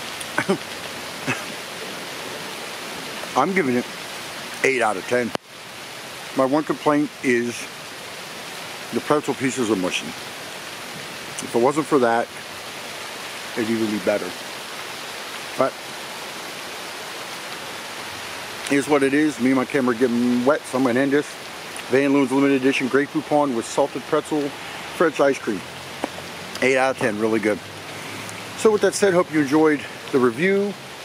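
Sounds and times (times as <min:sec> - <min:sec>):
steady rain falling: 0:00.0 - 0:31.0.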